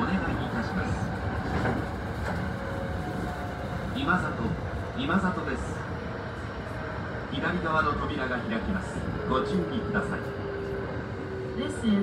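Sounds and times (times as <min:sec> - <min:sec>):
recorded onboard announcement: 0:00.0 - 0:02.0, 0:02.8 - 0:12.0
train rumbling on rails: 0:00.0 - 0:12.0.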